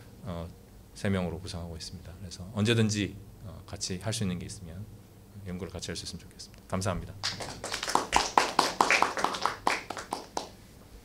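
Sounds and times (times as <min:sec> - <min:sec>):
people applauding: 0:07.2 - 0:10.6.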